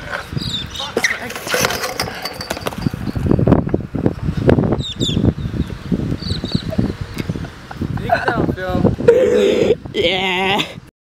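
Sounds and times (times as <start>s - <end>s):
scooter wheels rolling on concrete: 0.0s - 4.7s
scooter crash: 1.0s - 3.0s.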